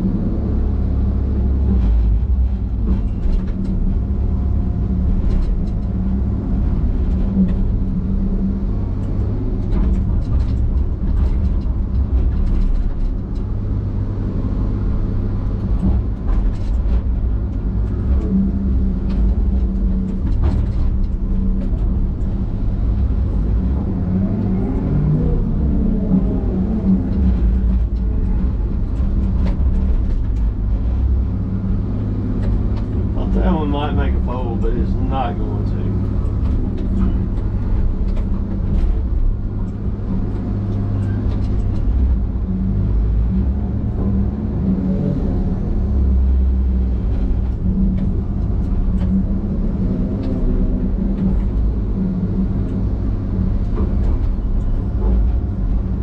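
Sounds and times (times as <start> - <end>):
diesel engine and hydraulics: 0.0 - 56.0.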